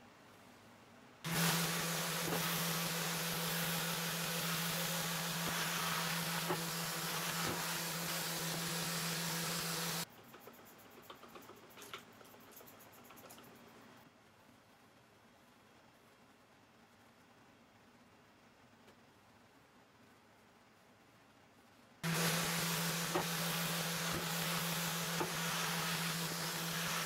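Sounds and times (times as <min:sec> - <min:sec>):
orbital sander running: 0:01.3 - 0:10.0, 0:22.0 - 0:27.0.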